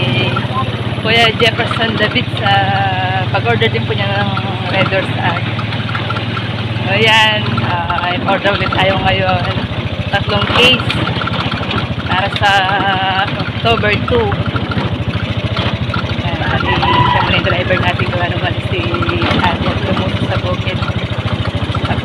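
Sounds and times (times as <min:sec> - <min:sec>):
people's voices: 0:00.0 - 0:05.6, 0:06.8 - 0:11.3, 0:12.0 - 0:14.5, 0:16.1 - 0:21.0
small motorcycle engine running: 0:00.0 - 0:22.0.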